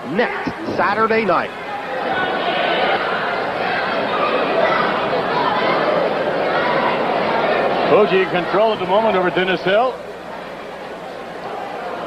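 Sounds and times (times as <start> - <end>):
crowd murmur in large hall: 0.0 - 12.0.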